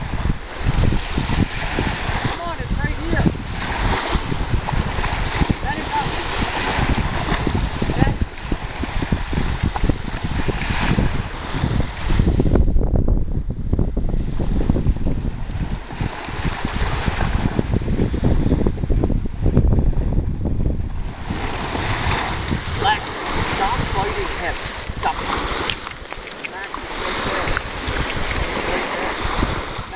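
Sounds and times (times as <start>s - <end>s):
small waves breaking: 0.0s - 12.2s, 15.2s - 18.4s, 20.8s - 29.9s
wind buffeting microphone: 0.0s - 29.9s.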